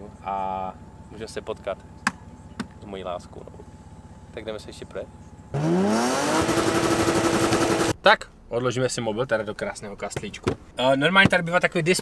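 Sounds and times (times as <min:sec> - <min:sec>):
car engine revving: 0:05.5 - 0:08.0.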